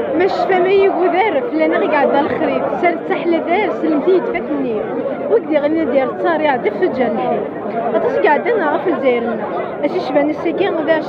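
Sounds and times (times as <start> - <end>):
crowd chatter: 0.0 - 11.0
woman speaking into a microphone: 0.0 - 11.0.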